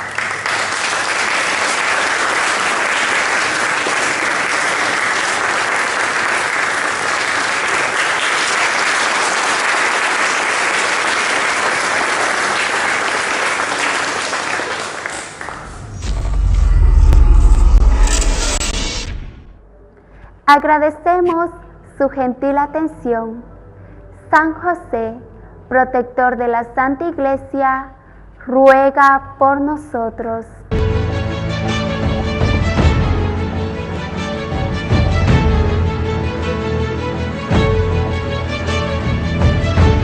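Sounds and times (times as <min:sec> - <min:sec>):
audience applauding: 0:00.0 - 0:16.0
loud deep rumble: 0:15.4 - 0:19.7.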